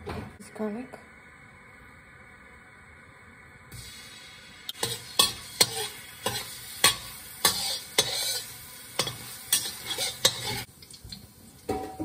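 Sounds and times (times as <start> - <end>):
sizzling in a wok: 0.4 - 12.0.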